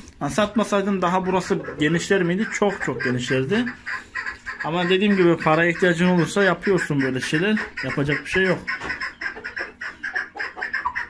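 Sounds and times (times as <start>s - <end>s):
poultry chirping: 0.0s - 11.0s.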